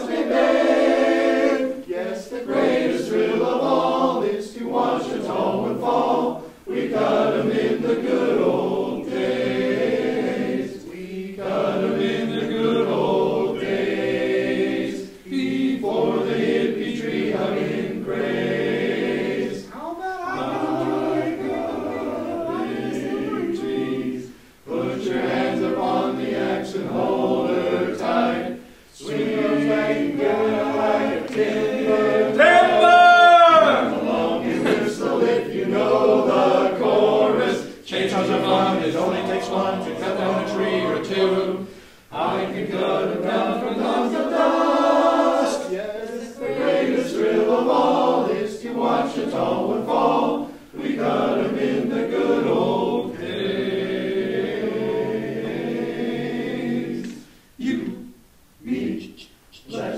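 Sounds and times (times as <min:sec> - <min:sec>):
choir singing a cappella: 0:00.0 - 0:59.9.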